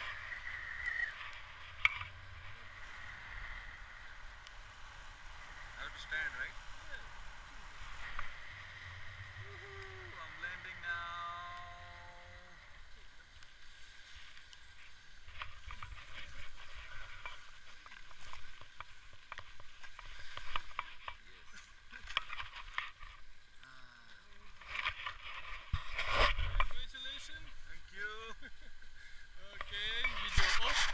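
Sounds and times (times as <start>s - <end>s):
brief voices: 9.4s - 12.6s
wind rushing over camera: 29.6s - 30.9s.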